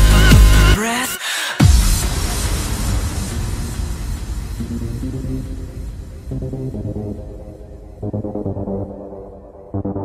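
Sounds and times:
hiss: 1.2s - 7.8s
low rumble: 1.6s - 9.2s.

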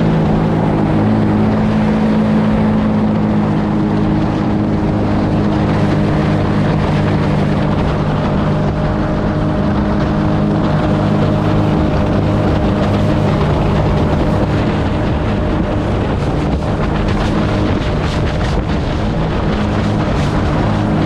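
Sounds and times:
boat engine running: 0.0s - 21.0s
water rushing past hull: 0.0s - 21.0s.

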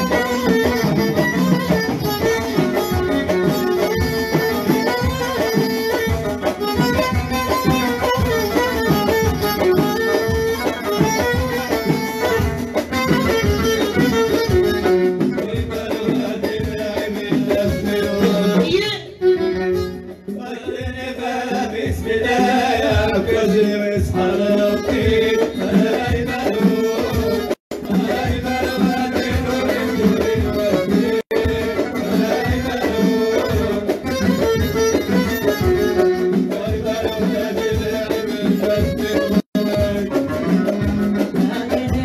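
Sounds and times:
violin melody: 0.0s - 15.1s, 19.1s - 20.2s
band rhythm accompaniment: 0.0s - 42.0s
steady drum beat: 0.0s - 42.0s.

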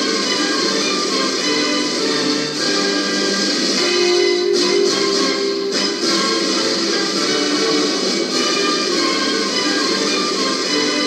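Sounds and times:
instrumental music with held notes: 0.0s - 11.0s.

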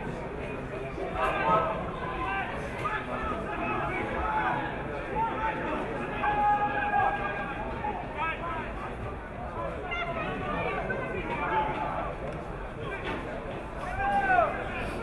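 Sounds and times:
players and spectators shouting: 1.1s - 12.2s, 12.8s - 15.0s.

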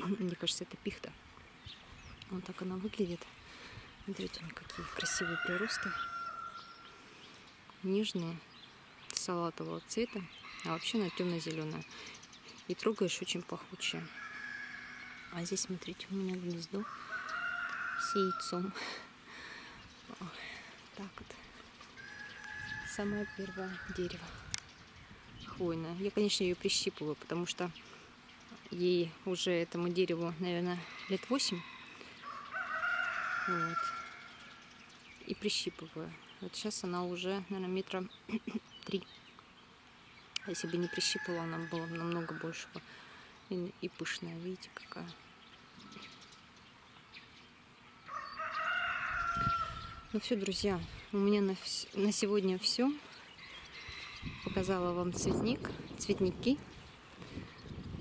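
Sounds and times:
farmyard bird calling: 0.0s - 58.0s.

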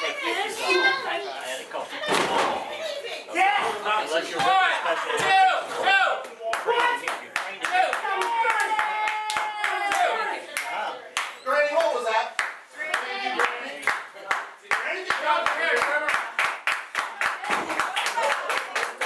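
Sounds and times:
hands clapping in rhythm: 6.2s - 19.0s
long yell: 8.1s - 10.1s.

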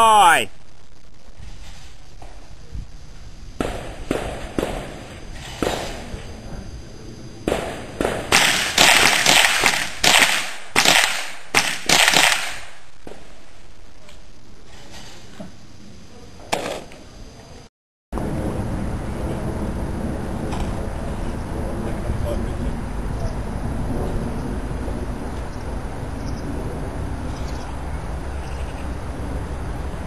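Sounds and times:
rifle shots with ringing echo: 7.5s - 12.8s.

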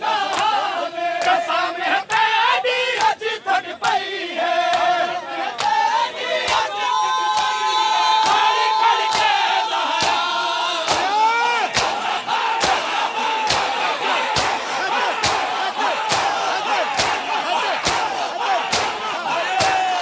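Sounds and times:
men shouting and chanting: 0.0s - 20.0s.

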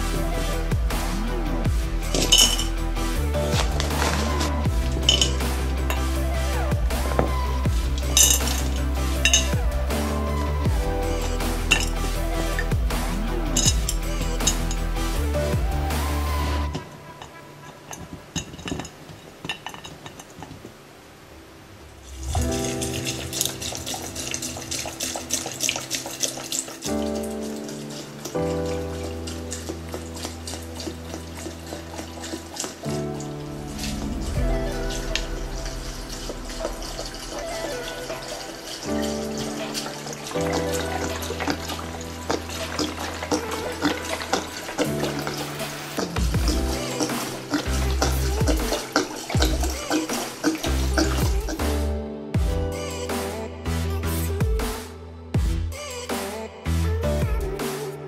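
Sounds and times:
electronic music with fast beat: 0.0s - 16.8s, 22.4s - 58.0s.

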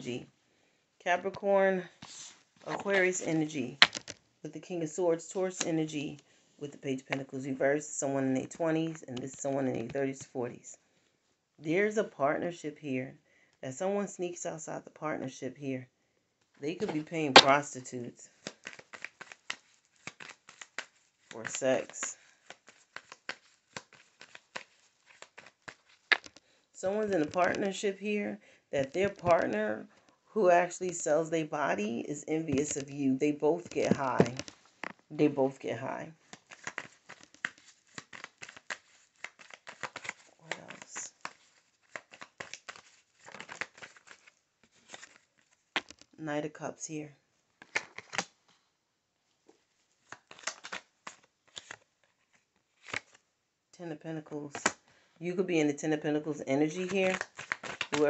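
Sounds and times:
cards being shuffled: 1.2s - 4.2s, 8.8s - 10.3s, 16.7s - 17.6s, 18.3s - 28.0s, 28.8s - 31.1s, 31.7s - 33.0s, 33.6s - 35.4s, 36.1s - 46.2s, 47.6s - 48.4s, 50.0s - 53.2s, 54.5s - 54.8s, 56.6s - 58.0s
sharp card snaps: 18.4s - 26.4s, 56.8s - 58.0s.

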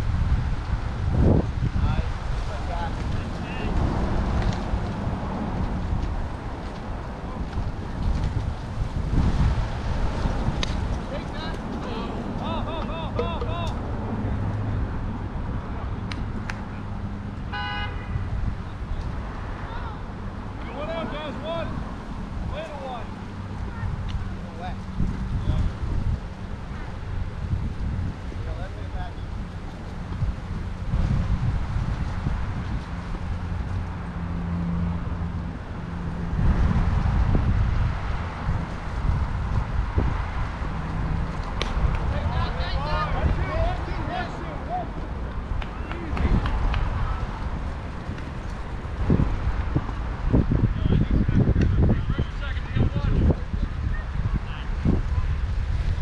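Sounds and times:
wind on microphone: 0.0s - 56.0s
distant voice calling: 11.2s - 13.8s
car horn toot: 17.5s - 18.3s.

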